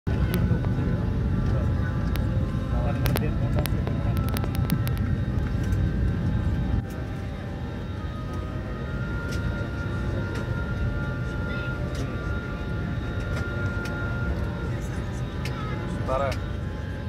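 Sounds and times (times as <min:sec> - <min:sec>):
airliner cabin rumble: 0:00.1 - 0:17.0.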